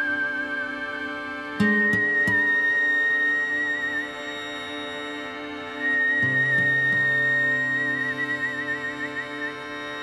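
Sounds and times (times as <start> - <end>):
high wavering string note: 1.6 - 10.0.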